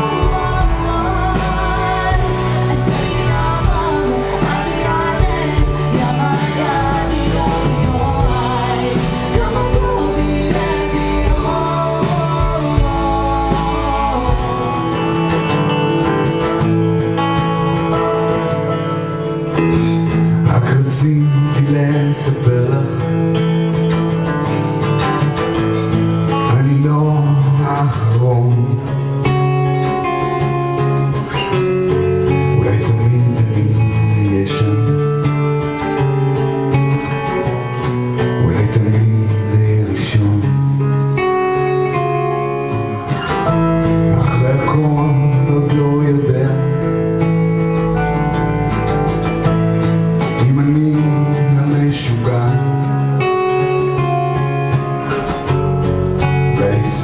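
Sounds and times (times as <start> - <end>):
drums: 0.0 - 57.0
electric guitar: 0.0 - 57.0
keyboard: 0.0 - 57.0
strummed acoustic guitar: 0.0 - 57.0.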